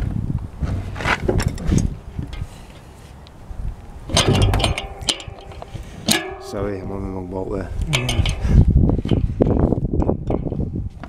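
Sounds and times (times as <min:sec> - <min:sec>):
spanner clicking on metal tool: 0:07.9 - 0:08.5.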